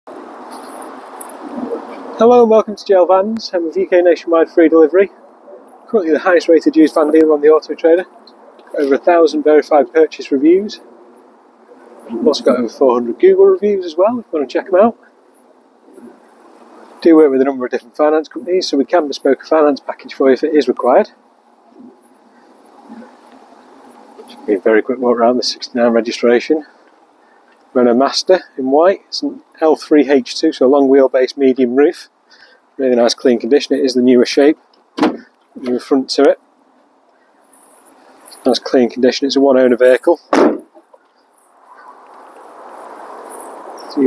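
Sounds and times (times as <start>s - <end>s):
faint background noise: 0.1s - 44.0s
steady outdoor hiss: 0.1s - 44.0s.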